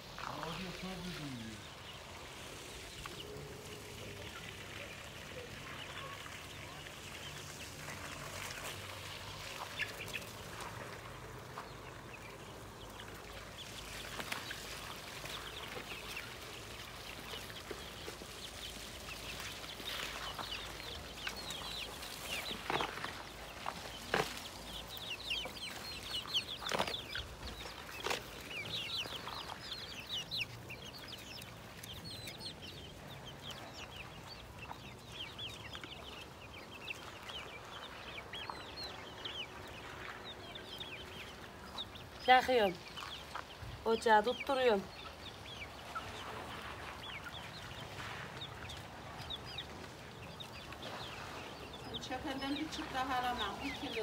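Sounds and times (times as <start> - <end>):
chickens clucking: 0.0 - 54.0.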